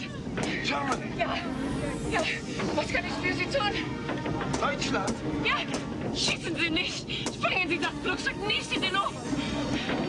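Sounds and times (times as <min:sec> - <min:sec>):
film music: 0:00.0 - 0:10.0.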